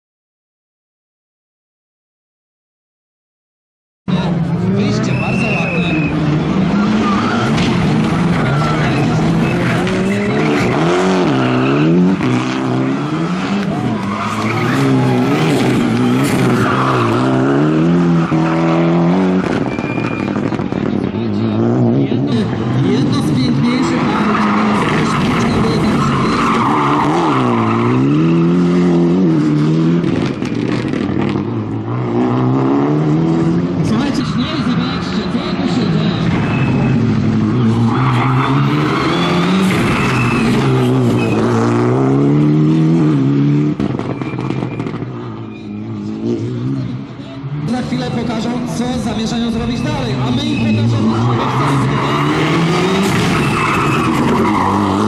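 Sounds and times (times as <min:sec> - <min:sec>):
rally car engine revving: 0:04.1 - 0:55.0
tyres skidding on tarmac: 0:04.2 - 0:55.0.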